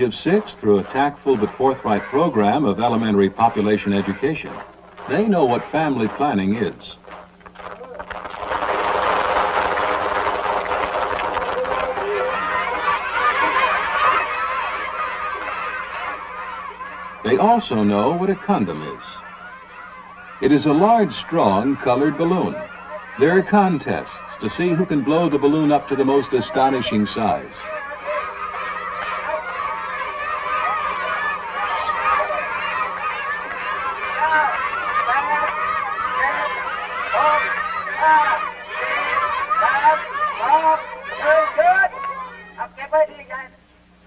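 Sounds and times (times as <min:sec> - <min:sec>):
crowd of children's voices: 0:00.0 - 0:43.6
faint low hum: 0:00.0 - 0:44.0.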